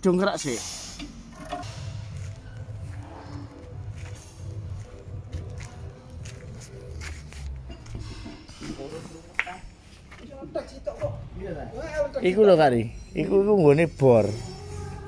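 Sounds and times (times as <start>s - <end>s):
faint music: 0.0s - 15.0s.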